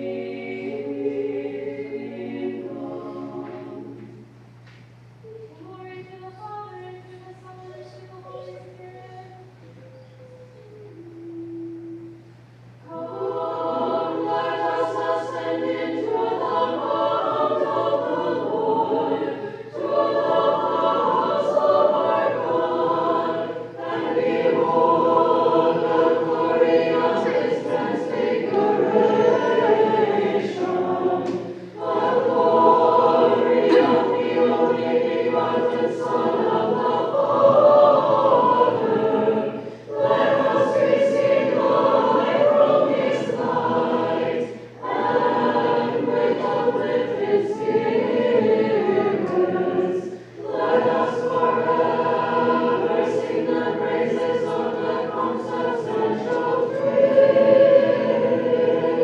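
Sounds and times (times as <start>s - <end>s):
unaccompanied choir chanting: 0.0s - 4.2s, 12.8s - 59.0s.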